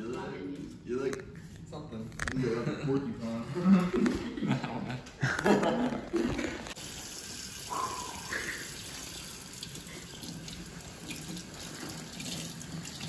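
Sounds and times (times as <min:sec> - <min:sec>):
faucet running: 0:06.8 - 0:13.0.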